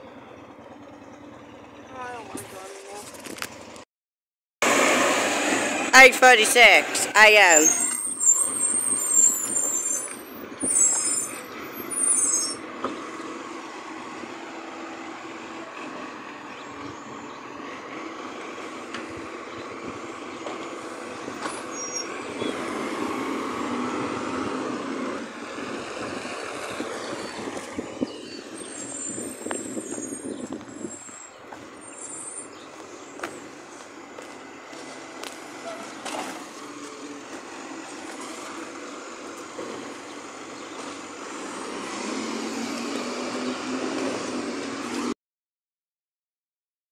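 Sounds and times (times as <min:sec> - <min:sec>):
garbage truck diesel engine rumble: 0:00.0 - 0:03.8, 0:04.6 - 0:45.1.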